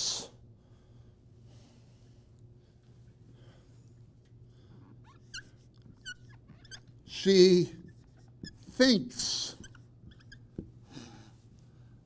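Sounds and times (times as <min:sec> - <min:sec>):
low room hum: 0:00.0 - 0:12.0
marker squeaking on whiteboard: 0:04.7 - 0:10.8.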